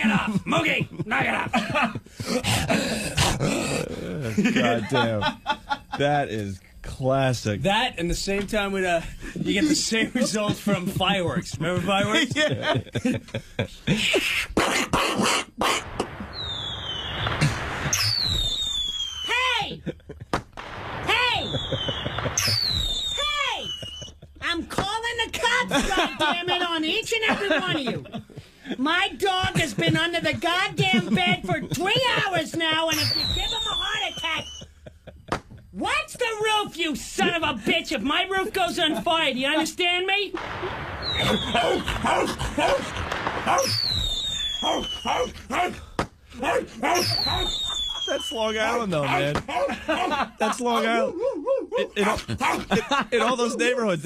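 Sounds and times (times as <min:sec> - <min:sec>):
man imitating fireworks with mouth: 0:14.0 - 0:19.2, 0:21.3 - 0:24.2, 0:41.0 - 0:46.0, 0:46.9 - 0:47.9
high falling whistle: 0:16.0 - 0:19.3, 0:21.3 - 0:24.3, 0:32.9 - 0:34.8, 0:40.4 - 0:45.4, 0:47.0 - 0:48.6
man imitating dog barking: 0:46.4 - 0:47.5, 0:48.6 - 0:49.8, 0:51.1 - 0:52.8.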